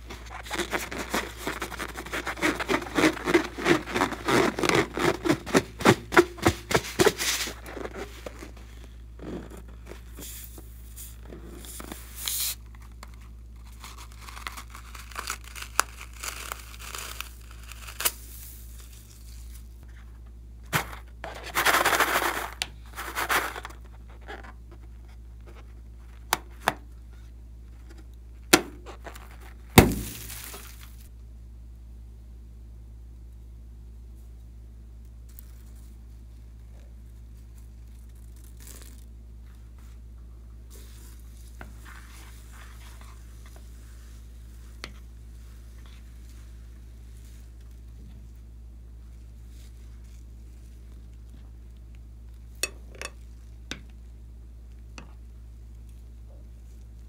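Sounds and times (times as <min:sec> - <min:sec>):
crackling balloon squeezes: 0:00.0 - 0:31.1, 0:35.3 - 0:40.0, 0:40.7 - 0:51.8
beads rustling: 0:09.8 - 0:19.9, 0:20.7 - 0:23.9, 0:29.0 - 0:31.1.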